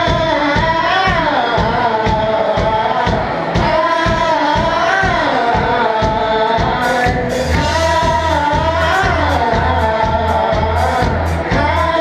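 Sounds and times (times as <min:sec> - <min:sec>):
drums and cymbals: 0:00.0 - 0:12.0
live band playing loud: 0:00.0 - 0:12.0.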